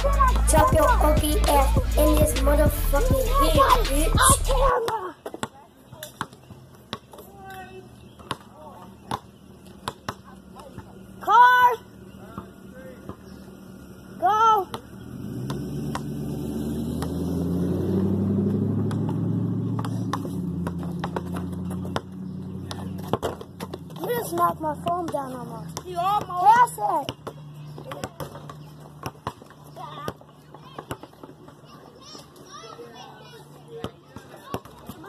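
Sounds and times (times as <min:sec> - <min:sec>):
vehicle engine running: 0:00.0 - 0:04.7, 0:08.9 - 0:30.7
children calling and talking: 0:00.0 - 0:09.4, 0:23.9 - 0:28.8, 0:29.5 - 0:35.0
basketball bouncing on pavement: 0:00.0 - 0:32.8, 0:33.7 - 0:35.0.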